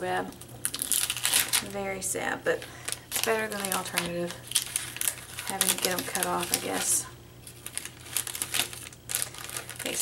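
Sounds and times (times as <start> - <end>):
plastic bag crinkling: 0.2 - 10.0.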